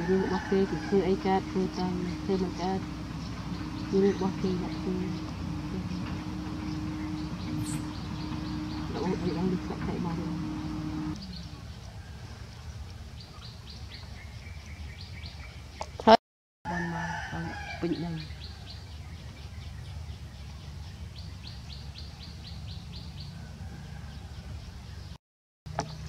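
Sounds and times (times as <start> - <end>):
steady low rumble: 0.0 - 12.9
bird chirping: 0.0 - 16.1, 17.8 - 26.0.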